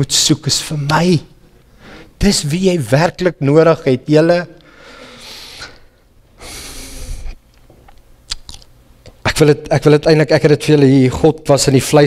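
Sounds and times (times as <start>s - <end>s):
man breathing into microphone: 4.7s - 7.4s
mouth clicks: 7.5s - 9.2s.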